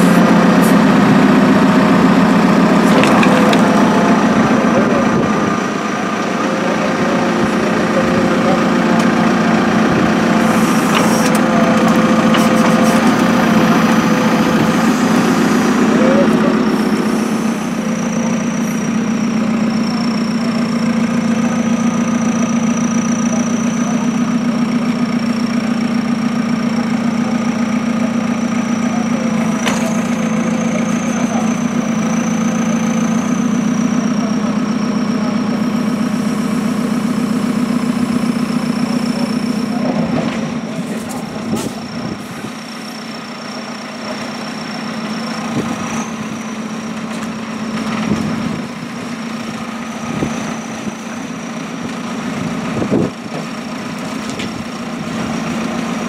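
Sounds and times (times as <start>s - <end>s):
diesel engine running: 0.0s - 56.0s.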